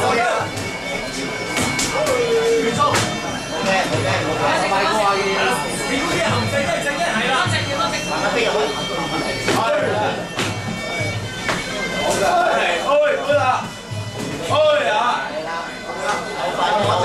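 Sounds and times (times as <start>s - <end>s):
reedy oboe melody: 0.0s - 17.0s.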